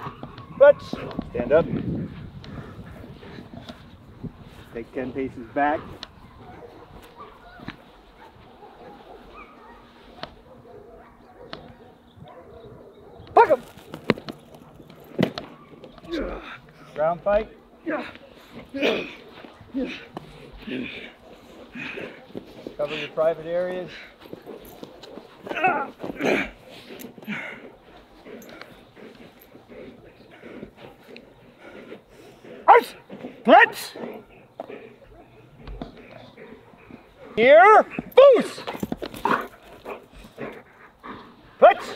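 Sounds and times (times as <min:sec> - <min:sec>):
soft dog noises: 0:00.0 - 0:41.9
scuffling: 0:13.3 - 0:41.9
person shouting command: 0:32.7 - 0:34.0, 0:37.4 - 0:38.6, 0:41.6 - 0:41.9.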